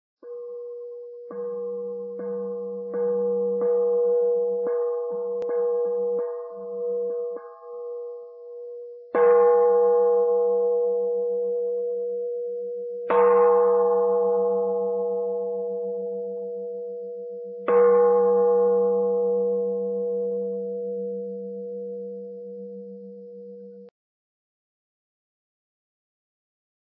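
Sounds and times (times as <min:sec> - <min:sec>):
singing bowl struck and ringing: 0:00.2 - 0:23.9.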